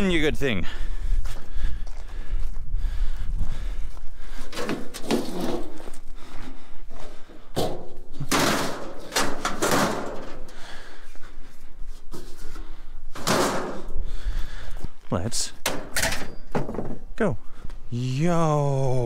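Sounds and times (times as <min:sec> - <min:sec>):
metal panels crashing: 0:07.7 - 0:10.4, 0:13.2 - 0:13.8.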